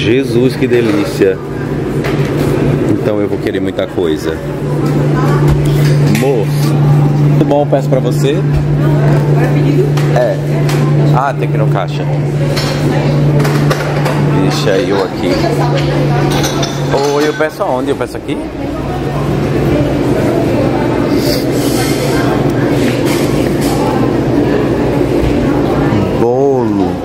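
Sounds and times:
low room rumble: 0:00.0 - 0:27.0
steady low hum: 0:00.0 - 0:27.0
indistinct background voices: 0:00.4 - 0:27.0.

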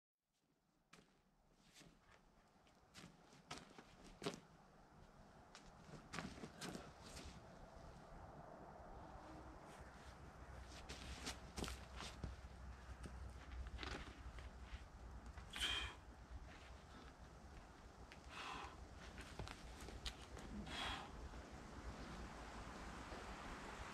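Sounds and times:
wind rumble on microphone: 0:05.2 - 0:23.9
climbing shoes scuffing on rock: 0:10.8 - 0:15.6.

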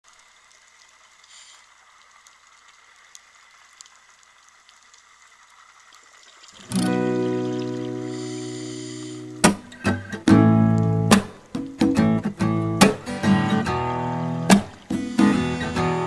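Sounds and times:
faint hiss: 0:00.1 - 0:16.0
acoustic guitar chord strummed: 0:06.7 - 0:16.0.

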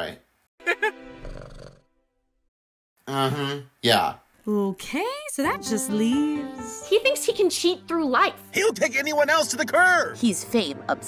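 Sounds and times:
cartoon wordless vocal sound: 0:03.1 - 0:03.8.

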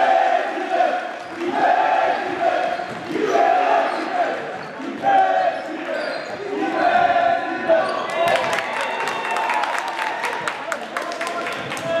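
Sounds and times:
crowd and player voices: 0:00.0 - 0:12.0.

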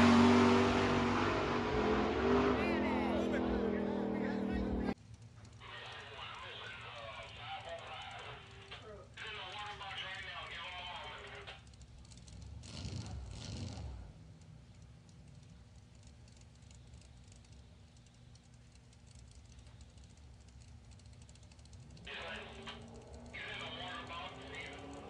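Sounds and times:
low steady rumble: 0:00.0 - 0:25.0
muffled talking: 0:02.6 - 0:05.0.

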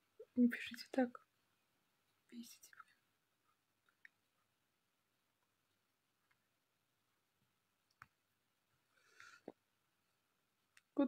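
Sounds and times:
woman speaking: 0:00.2 - 0:01.2, 0:02.3 - 0:03.0
woman whispering: 0:00.2 - 0:01.2, 0:02.3 - 0:03.0.

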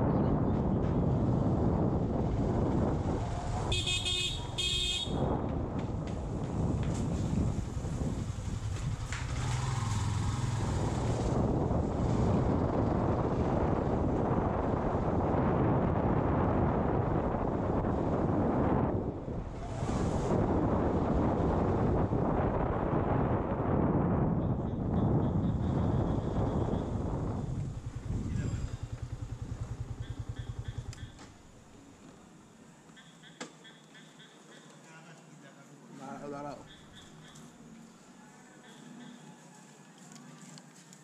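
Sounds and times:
wind rumble on microphone: 0:00.0 - 0:31.5
horn honking: 0:03.7 - 0:05.4
motorcycle engine running: 0:24.5 - 0:31.6.

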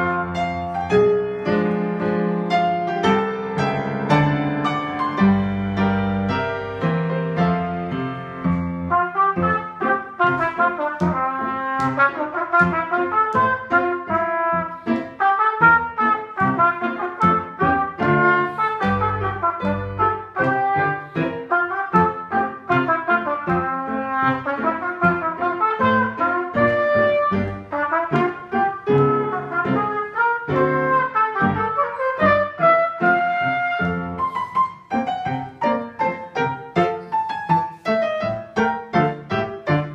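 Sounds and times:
trumpet playing march-style tune: 0:00.0 - 0:01.0, 0:08.8 - 0:34.4
piano passage: 0:00.0 - 0:39.9.

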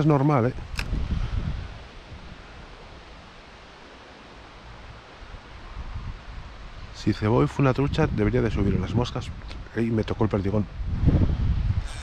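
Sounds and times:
steady rushing hiss: 0:00.0 - 0:12.0
wind gusting over microphone: 0:00.0 - 0:12.0.

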